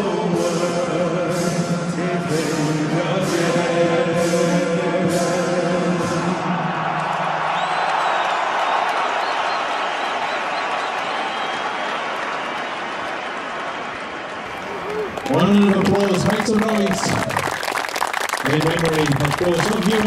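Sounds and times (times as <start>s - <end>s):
crowd applauding: 6.4s - 20.0s.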